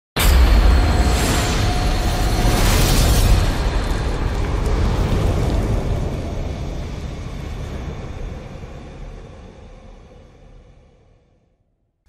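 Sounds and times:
explosive hit: 0:00.2 - 0:06.6
deep rumbling sound effect: 0:00.2 - 0:11.2.

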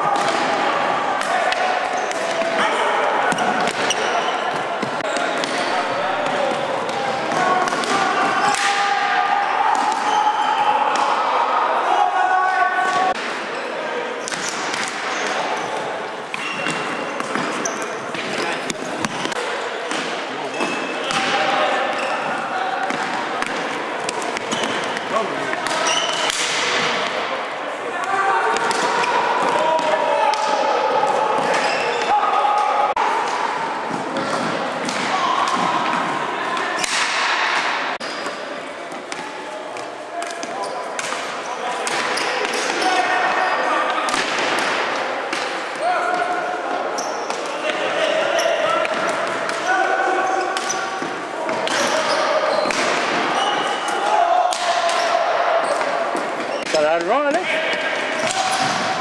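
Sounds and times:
players shouting: 0:00.0 - 0:38.3, 0:39.2 - 0:59.0.

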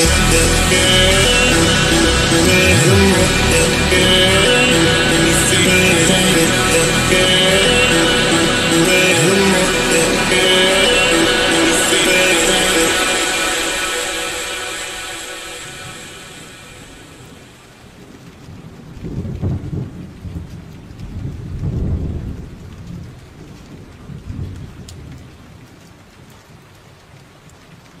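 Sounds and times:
music: 0:00.0 - 0:17.2
steady rain: 0:00.0 - 0:28.0
rolls of thunder: 0:19.0 - 0:20.5, 0:21.1 - 0:23.1.

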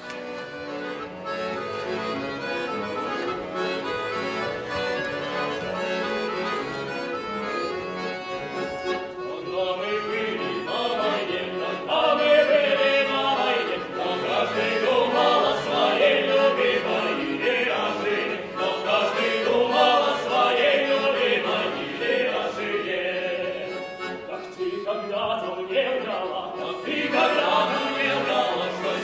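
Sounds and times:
button accordion: 0:00.0 - 0:29.0
male choir singing in harmony: 0:09.1 - 0:29.0.

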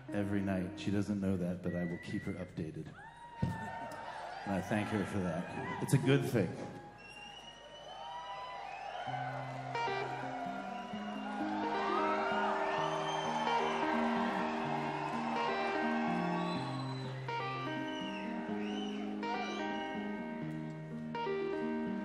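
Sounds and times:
audience whoops: 0:03.0 - 0:06.1, 0:06.7 - 0:20.3
electric guitar held notes: 0:09.1 - 0:22.0.

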